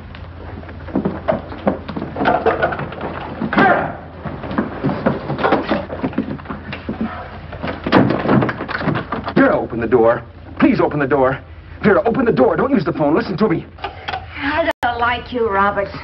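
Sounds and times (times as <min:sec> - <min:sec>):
rapid knocks and handling: 0:00.0 - 0:10.6
steady low hum: 0:00.0 - 0:16.0
door slamming shut: 0:02.2 - 0:04.1, 0:07.7 - 0:09.6.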